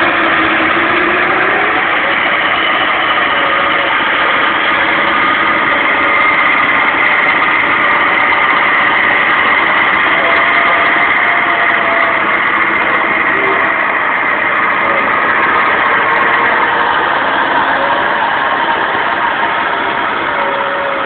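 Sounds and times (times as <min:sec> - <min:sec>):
car engine idling: 0:00.0 - 0:21.0
electric winch running under load: 0:00.0 - 0:21.0.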